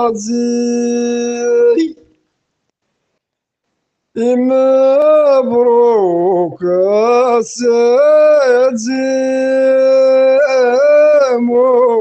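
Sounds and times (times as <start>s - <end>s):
man singing a long note: 0.0s - 2.1s, 4.2s - 12.0s.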